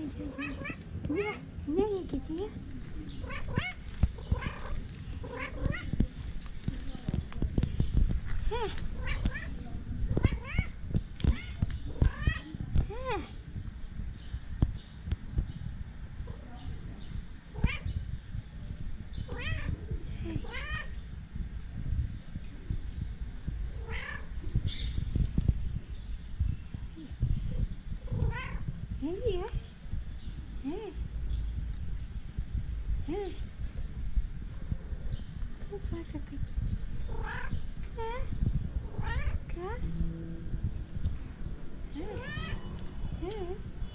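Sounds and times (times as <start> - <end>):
low rumble: 0.0 - 43.9
cat meowing: 3.2 - 5.9, 10.2 - 12.5, 23.8 - 24.3, 28.2 - 28.6, 42.0 - 42.8.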